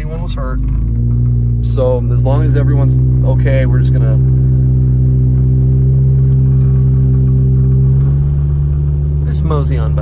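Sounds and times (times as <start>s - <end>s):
car engine and road drone: 0.0s - 10.0s.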